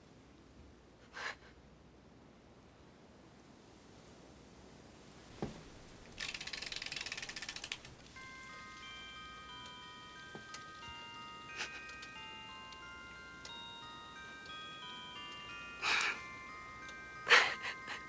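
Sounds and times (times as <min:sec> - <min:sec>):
soft knocks: 0:05.4 - 0:05.7
music box winding ratchet: 0:06.2 - 0:18.0
music box tinkling melody: 0:06.4 - 0:18.0.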